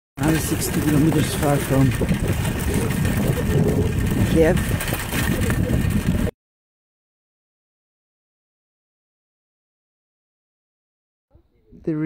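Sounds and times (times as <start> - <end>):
bicycle tyres rolling on rough asphalt: 0.2 - 6.3
wind buffeting microphone: 0.2 - 6.3.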